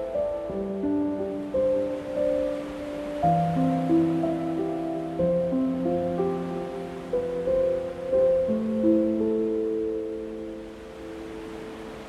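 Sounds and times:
ocean surf: 0:00.0 - 0:12.0.

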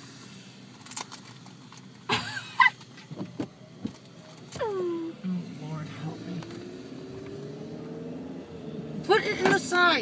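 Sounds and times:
low noise inside car: 0:00.0 - 0:10.0.

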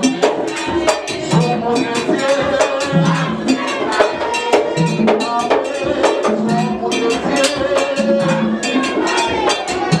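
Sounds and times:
drums: 0:00.0 - 0:10.0
voices singing: 0:00.0 - 0:10.0.

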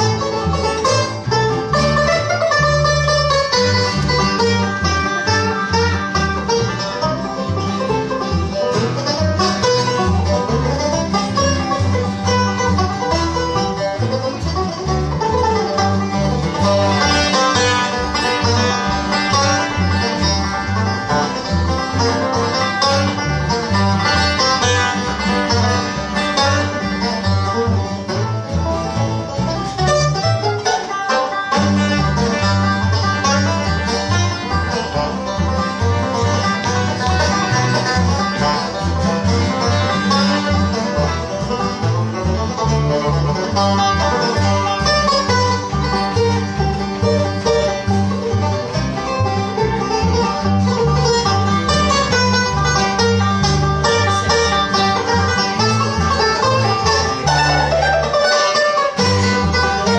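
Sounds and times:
acoustic guitar rhythm: 0:00.0 - 0:59.9
banjo playing lead: 0:00.0 - 0:59.9
bluegrass instrumental: 0:00.0 - 0:59.9
upright bass: 0:00.0 - 0:59.9.

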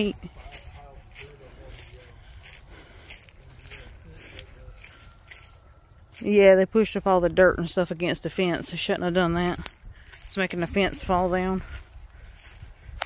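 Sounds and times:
footsteps on dry leaves: 0:00.0 - 0:07.3, 0:07.9 - 0:13.0.

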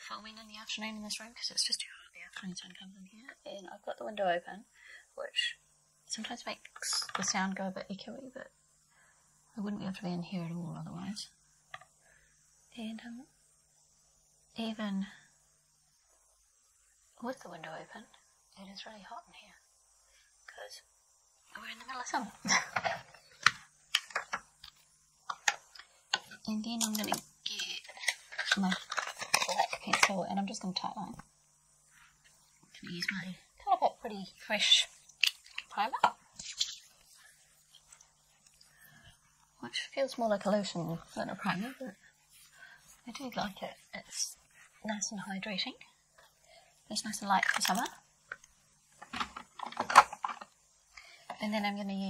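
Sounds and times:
makeup items clicking and tapping: 0:22.7 - 0:30.2.

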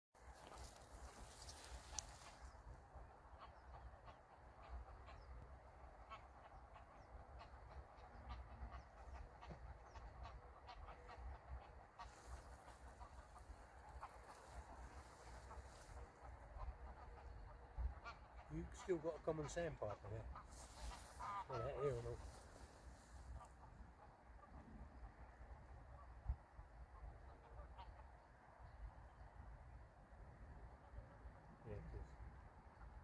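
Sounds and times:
distant waterfowl calls: 0:00.2 - 0:33.0.

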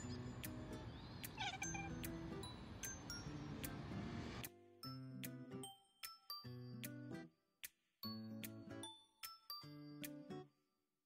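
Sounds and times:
background music: 0:00.0 - 0:07.3, 0:08.0 - 0:10.5
cat chirp-like meow: 0:01.2 - 0:02.1.

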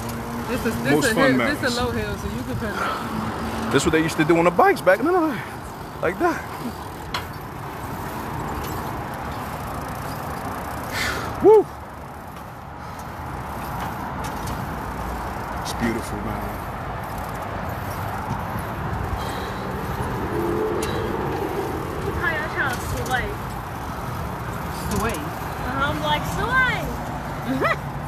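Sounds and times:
wheels rolling on asphalt: 0:00.0 - 0:28.0.

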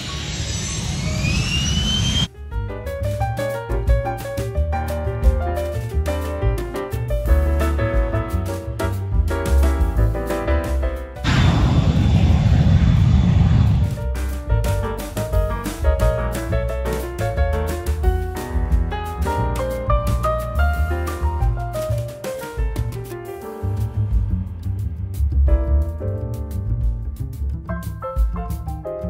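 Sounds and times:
faint high engine whine: 0:00.0 - 0:02.3
jet engines whining at takeoff: 0:00.0 - 0:02.3, 0:11.3 - 0:14.1
piano music: 0:02.3 - 0:11.4, 0:13.9 - 0:29.0.

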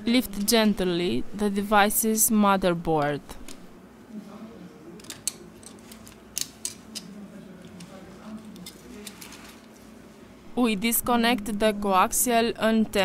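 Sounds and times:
low steady hum: 0:00.0 - 0:13.0
metal tweezers clicking: 0:05.0 - 0:07.2.

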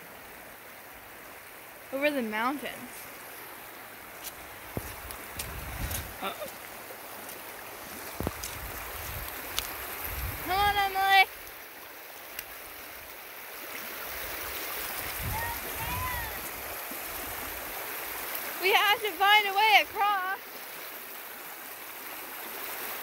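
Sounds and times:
stream rushing over stones: 0:00.0 - 0:23.0.

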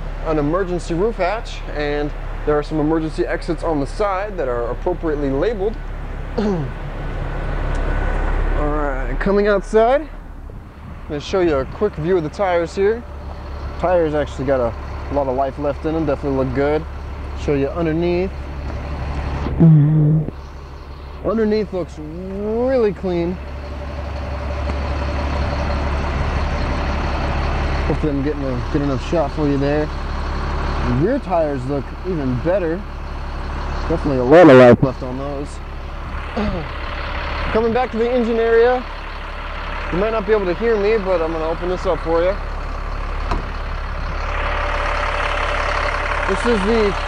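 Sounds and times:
bus diesel engine idling: 0:00.0 - 0:47.0.

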